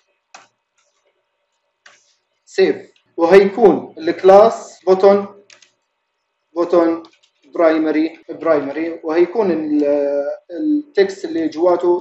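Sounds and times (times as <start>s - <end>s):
faint keyboard keystrokes: 5.4s - 5.8s, 7.0s - 7.5s.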